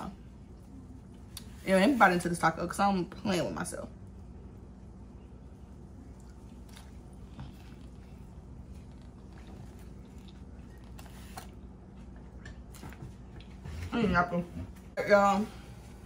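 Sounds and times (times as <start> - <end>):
steady low hum: 0.0 - 16.0
person chewing: 5.9 - 13.5.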